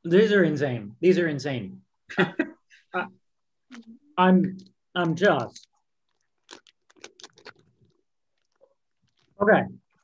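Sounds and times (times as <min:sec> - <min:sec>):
crunchy cookie chewing: 0:05.0 - 0:10.0.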